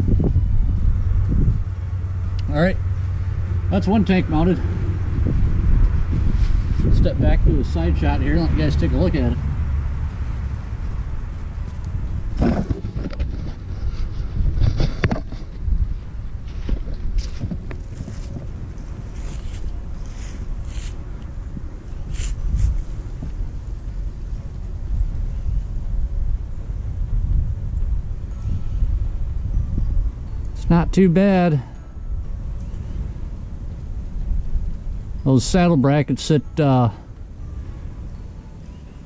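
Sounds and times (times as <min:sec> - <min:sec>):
wind buffeting microphone: 0:00.0 - 0:35.8
camera handling knocks and rustles: 0:12.4 - 0:13.6, 0:14.6 - 0:15.5.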